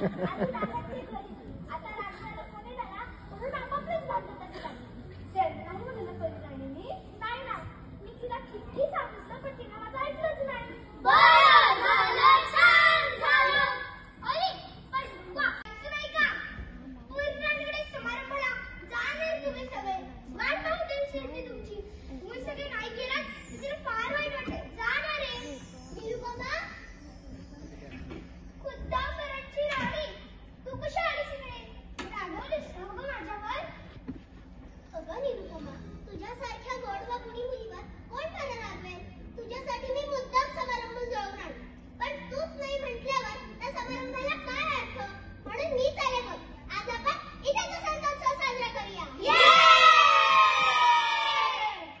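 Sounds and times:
children speaking: 0:00.0 - 0:27.2, 0:27.9 - 0:33.8, 0:35.0 - 0:52.0
children shouting a cheer: 0:11.1 - 0:13.8, 0:49.2 - 0:52.0.

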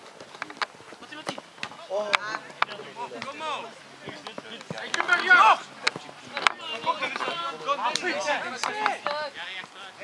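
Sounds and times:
player shouting: 0:05.0 - 0:05.7.

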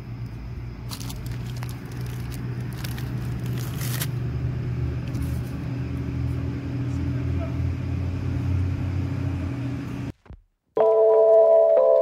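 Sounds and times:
engine idling hum: 0:00.0 - 0:10.1
snack wrapper crackling: 0:00.9 - 0:04.2.

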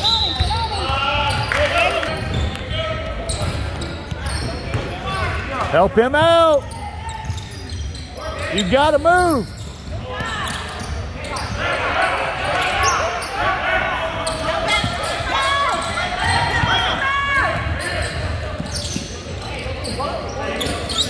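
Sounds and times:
crowd murmur and shouts: 0:00.0 - 0:21.0.

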